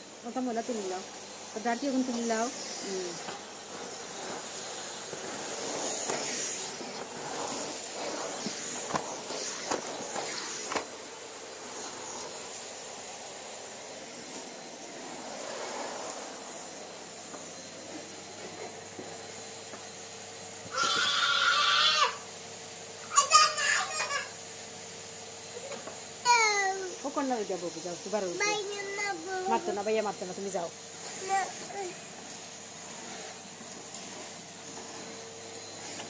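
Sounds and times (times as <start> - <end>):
vacuum cleaner whine: 0.0 - 36.0
child squealing: 20.7 - 22.2, 23.1 - 24.3.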